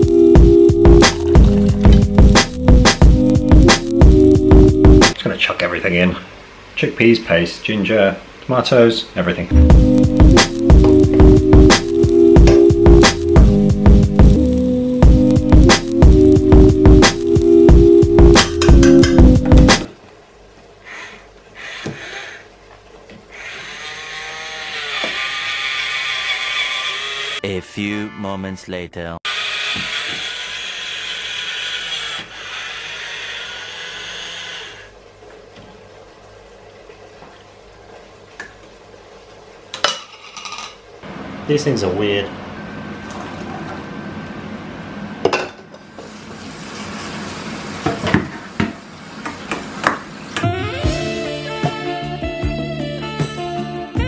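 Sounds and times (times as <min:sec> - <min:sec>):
colander clanking on metal sink: 0:18.5 - 0:19.4
can opener motor whirring: 0:23.3 - 0:27.4, 0:29.3 - 0:34.9.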